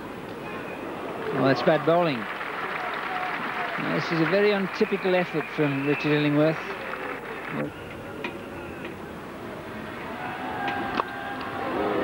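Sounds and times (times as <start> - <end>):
crowd murmuring: 1.0 - 8.6.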